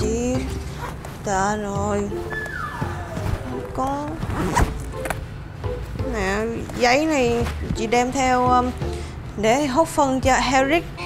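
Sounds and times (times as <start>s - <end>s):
zipper pulled open: 2.3s - 5.2s.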